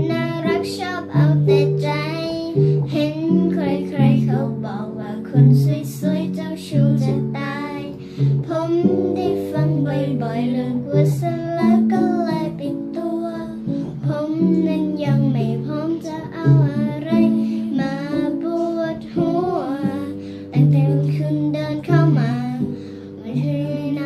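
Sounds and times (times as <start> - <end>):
girl singing: 0.0 - 24.0
guitar chords: 0.0 - 24.0.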